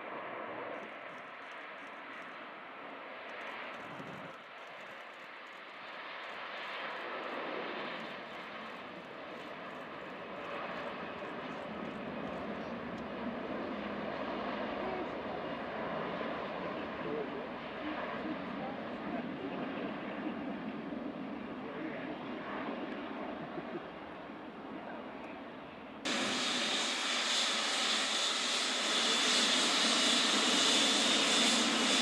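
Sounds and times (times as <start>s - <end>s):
jet engines roaring: 7.2s - 32.0s.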